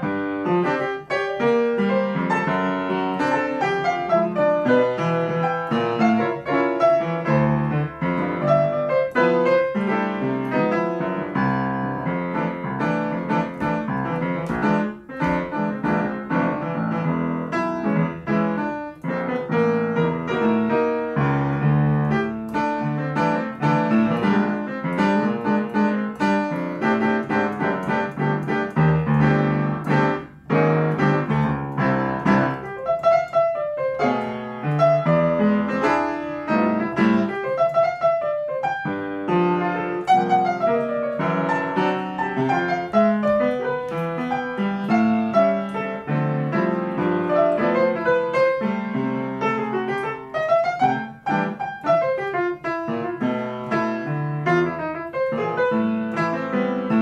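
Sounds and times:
solo jazz piano: 0.0 - 57.0.

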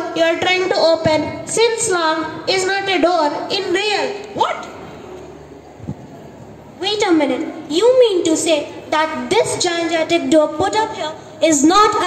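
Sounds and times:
child's voice: 0.0 - 4.7, 6.8 - 12.0
faint background noise: 0.0 - 12.0.

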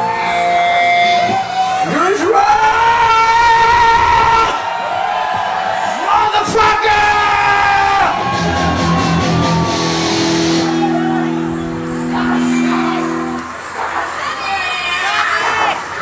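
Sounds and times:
crowd shouting: 0.0 - 16.0
held synthesizer chord: 8.3 - 13.8.

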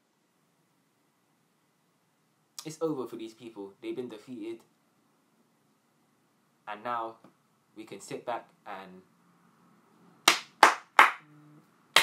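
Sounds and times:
person clapping hands: 10.3 - 11.3.

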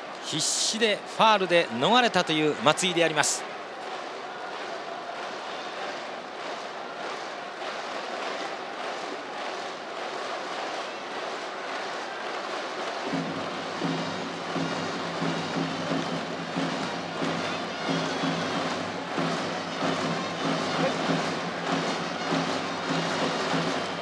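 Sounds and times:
stadium crowd noise: 0.0 - 24.0
crowd chanting: 2.8 - 24.0
rhythmic band music: 13.1 - 24.0.

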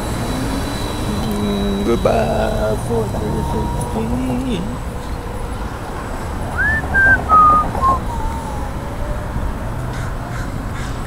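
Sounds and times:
street rumble: 0.0 - 11.0
person whistling a falling tune: 6.6 - 8.1.

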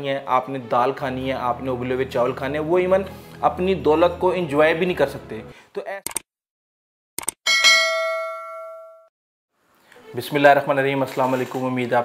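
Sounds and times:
quick clicks: 6.0 - 6.3, 7.2 - 7.4
bell ding: 7.5 - 9.1.

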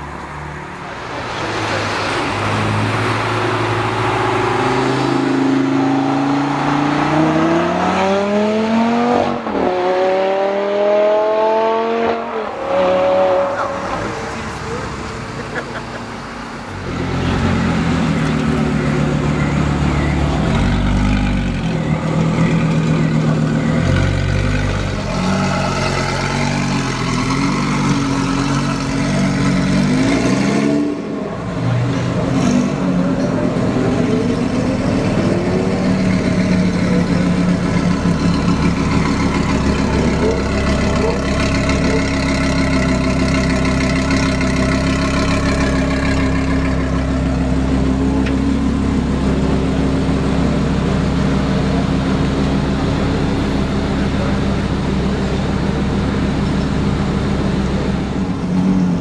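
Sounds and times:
sports car engine revving: 1.5 - 15.6, 19.4 - 59.0.

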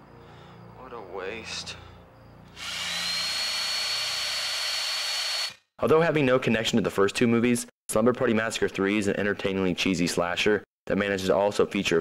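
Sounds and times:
power drill running: 2.5 - 5.6.

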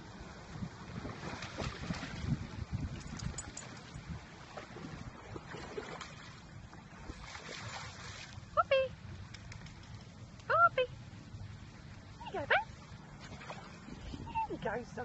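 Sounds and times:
wind rumbling on microphone: 0.0 - 10.5, 11.1 - 15.0
dogs splashing in shallow water: 0.8 - 10.2, 12.4 - 15.0.

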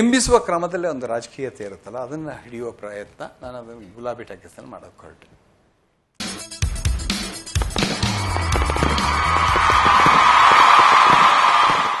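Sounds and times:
crackling firework effects: 7.5 - 12.0.

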